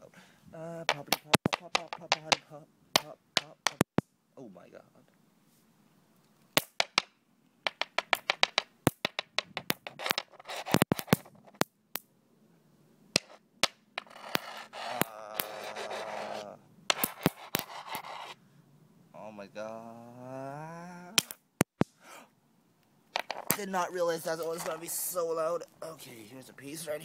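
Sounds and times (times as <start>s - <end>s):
rough scraping noise: 0.9s - 3.8s, 9.6s - 11.6s, 14.0s - 18.4s, 23.2s - 25.3s.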